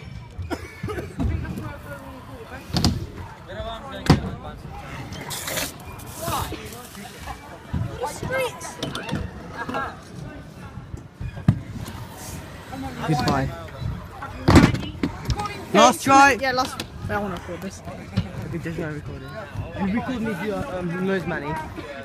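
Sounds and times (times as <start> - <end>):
faint voices: 0.0 - 22.0.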